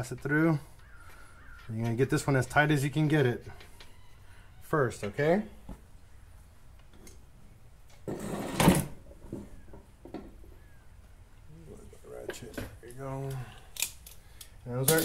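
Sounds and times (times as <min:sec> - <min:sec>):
hand tools rattling and clinking: 0:13.3 - 0:15.0
tools clattering: 0:14.8 - 0:15.0.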